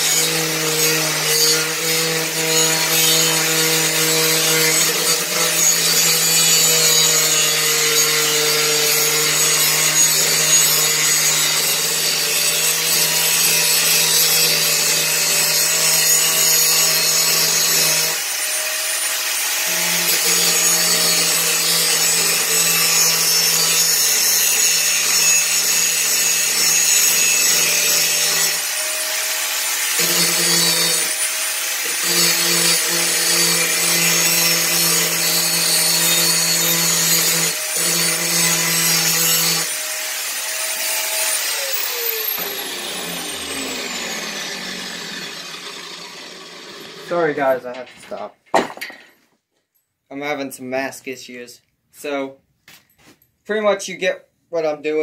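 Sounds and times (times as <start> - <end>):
angle grinder grinding steel: 0.0 - 49.1.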